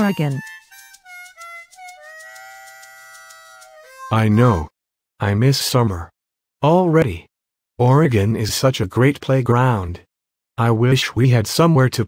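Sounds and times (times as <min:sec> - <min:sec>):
instrumental background music: 0:00.0 - 0:04.7.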